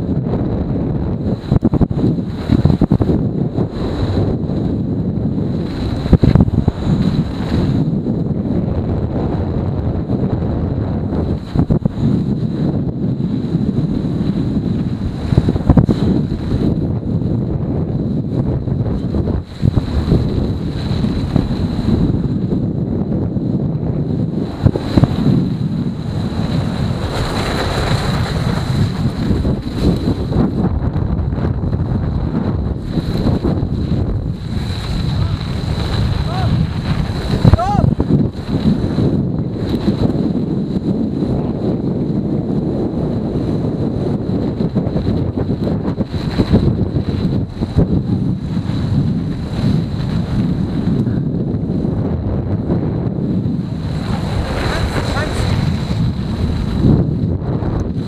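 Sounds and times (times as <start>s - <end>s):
bike tyres rumbling over snow: 0.0s - 58.0s
wind buffeting microphone: 0.0s - 58.0s.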